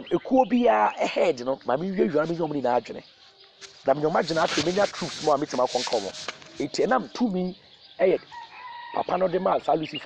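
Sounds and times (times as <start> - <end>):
person speaking: 0.5 - 3.0, 3.7 - 8.2.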